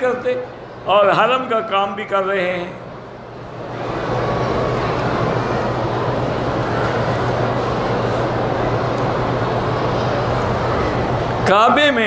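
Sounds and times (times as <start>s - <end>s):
steady loud noise: 0.0s - 12.0s.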